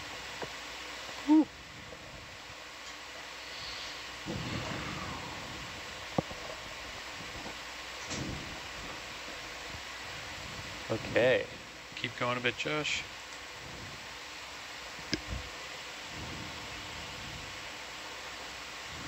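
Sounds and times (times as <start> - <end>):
steady audio hiss: 0.0 - 19.0.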